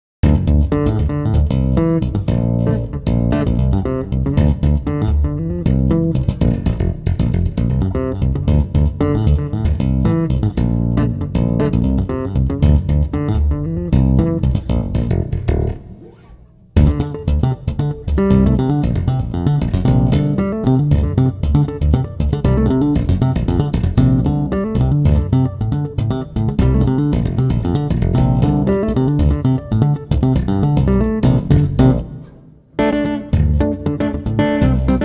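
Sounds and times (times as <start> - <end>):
tapped stringed instrument with effects: 0.2 - 35.0.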